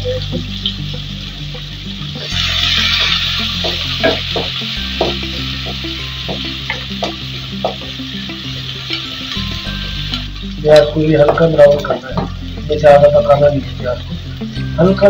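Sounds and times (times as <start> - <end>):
onion sizzling in oil: 0.0 - 15.0.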